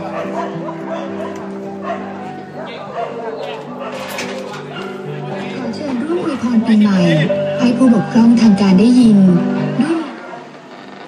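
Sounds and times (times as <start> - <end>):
person singing: 6.8 - 10.2.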